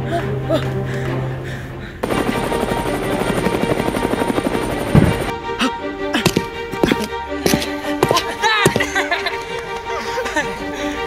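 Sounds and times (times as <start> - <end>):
background music: 0.0 - 11.0
helicopter rotor chopping: 2.0 - 5.3.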